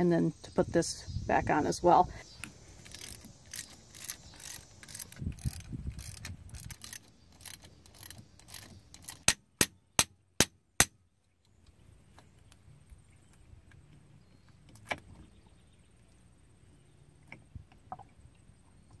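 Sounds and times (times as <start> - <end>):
ratchet wrench clicking: 2.8 - 9.4.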